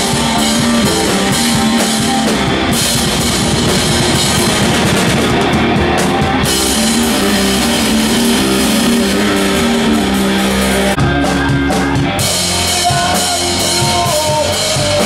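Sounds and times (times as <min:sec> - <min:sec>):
distorted electric guitars: 0:00.0 - 0:15.0
drum kit with heavy cymbals: 0:00.0 - 0:15.0.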